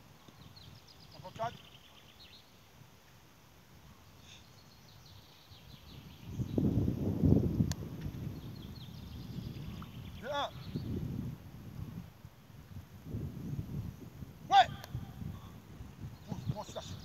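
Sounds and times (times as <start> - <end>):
birds chirping: 0.1 - 2.7, 4.0 - 7.1, 7.7 - 11.2, 13.6 - 17.0
wind rumbling on microphone: 4.8 - 17.0.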